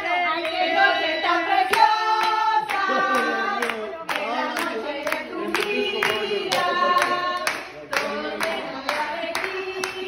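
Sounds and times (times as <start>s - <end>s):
group singing a birthday song: 0.0s - 10.0s
hands clapping along: 1.6s - 10.0s.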